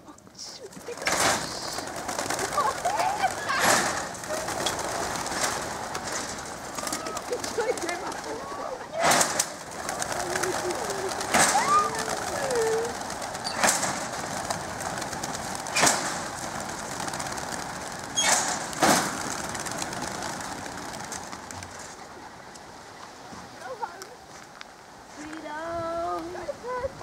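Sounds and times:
pigeon wingbeats whirring: 0:00.3 - 0:24.9
sharp cracks: 0:00.7 - 0:22.7.

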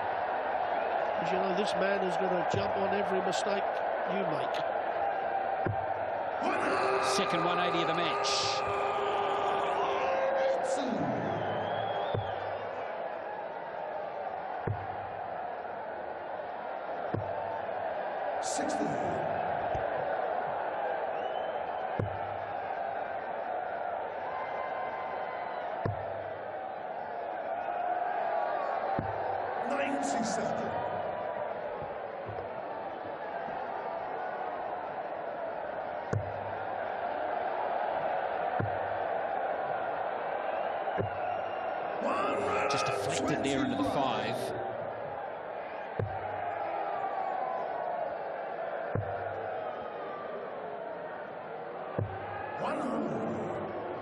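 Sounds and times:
crowd outbursts: 0:00.0 - 0:54.0.

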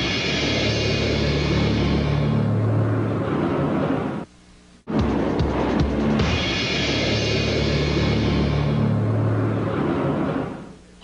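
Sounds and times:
steady rushing rumble: 0:00.0 - 0:04.3, 0:04.9 - 0:10.9.

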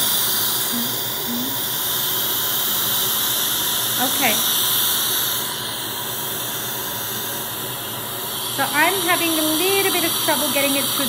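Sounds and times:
dental suction hissing: 0:00.0 - 0:11.0.

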